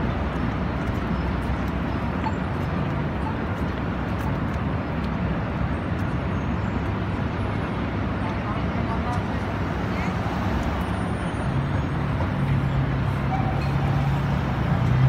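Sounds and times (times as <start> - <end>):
low engine hum: 0.0 - 15.0
traffic running: 0.0 - 15.0
indistinct voices of passers-by: 7.4 - 15.0.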